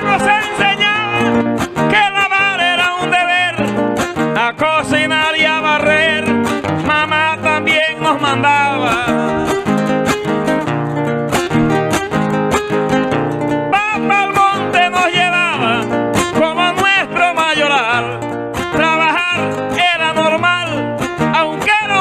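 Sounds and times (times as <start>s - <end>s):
man singing ornamented vocal line: 0.0s - 9.6s, 13.7s - 22.0s
strummed acoustic guitars: 0.0s - 22.0s.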